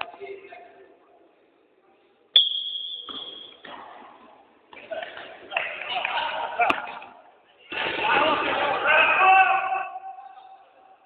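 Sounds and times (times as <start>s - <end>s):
referee's whistle blast: 2.3s - 3.6s.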